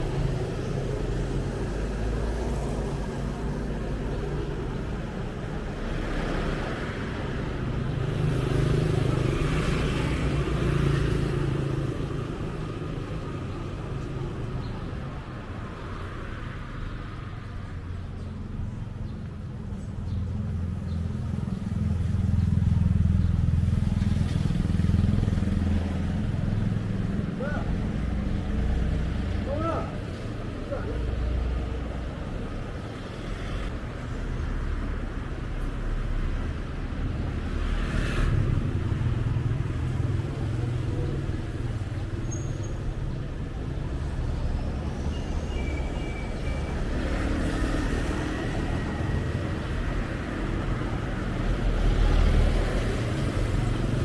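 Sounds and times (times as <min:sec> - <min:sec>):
cars and motorbikes passing: 0:00.0 - 0:54.0.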